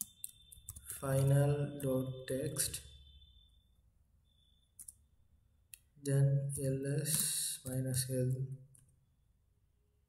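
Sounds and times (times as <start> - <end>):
computer keys clicking: 0.0 - 1.4, 4.8 - 5.0.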